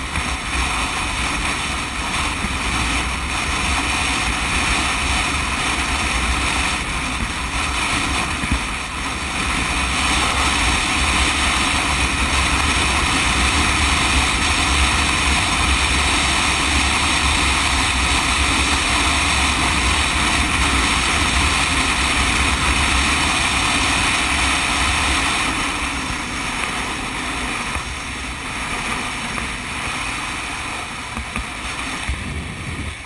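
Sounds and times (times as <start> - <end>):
engine and tyre drone: 0.0 - 33.0
wind rushing on microphone: 0.0 - 33.0.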